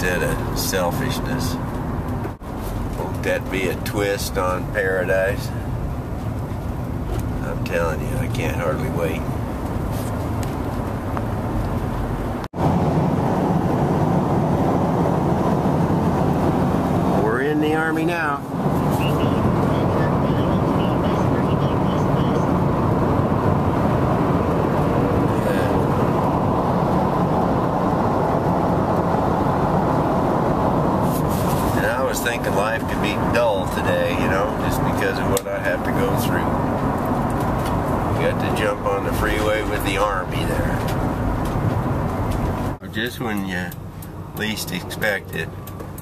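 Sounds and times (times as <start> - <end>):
road and engine noise in van: 0.0 - 46.0.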